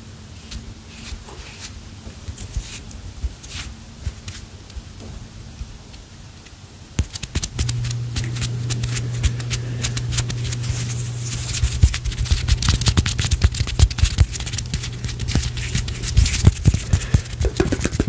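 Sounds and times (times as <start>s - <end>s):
hands rubbing near microphone: 0.4s - 4.5s, 7.0s - 18.0s
low hum: 7.5s - 18.0s.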